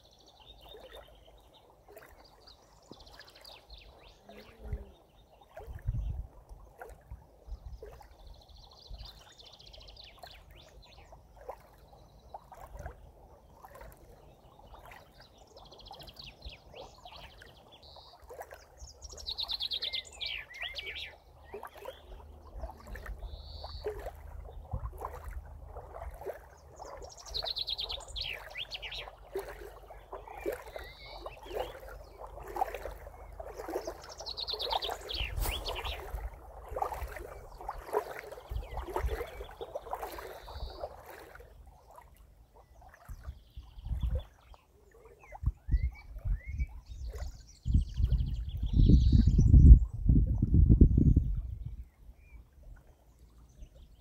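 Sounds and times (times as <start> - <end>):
small birds chirping: 13.6 - 25.3, 26.2 - 49.7.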